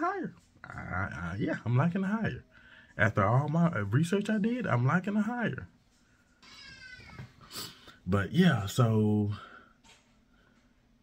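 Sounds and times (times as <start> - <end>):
cat meowing: 6.4 - 7.3.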